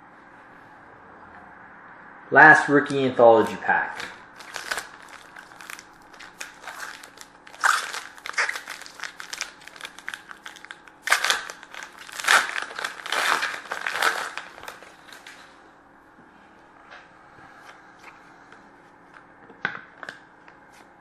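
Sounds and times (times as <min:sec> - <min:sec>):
foil wrapper tearing and crinkling: 0:03.4 - 0:15.3.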